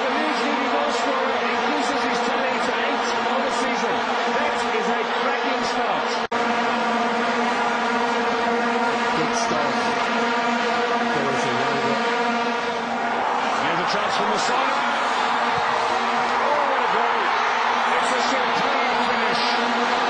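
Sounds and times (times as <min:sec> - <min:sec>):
crowd blowing vuvuzelas: 0:00.0 - 0:20.0.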